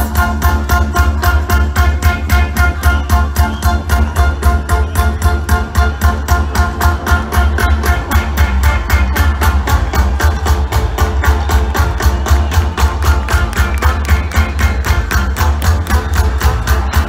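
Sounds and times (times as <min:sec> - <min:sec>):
heavy bass: 0:00.0 - 0:17.0
live band playing loud: 0:00.0 - 0:17.0.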